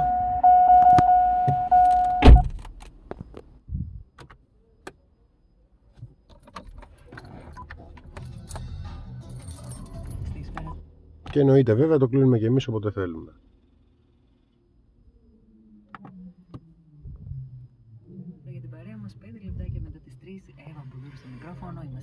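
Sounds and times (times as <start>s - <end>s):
car electronic warning tone: 0.0s - 2.5s
car door shutting thump: 0.8s - 2.6s
faint radio music: 7.1s - 13.4s, 18.0s - 22.0s.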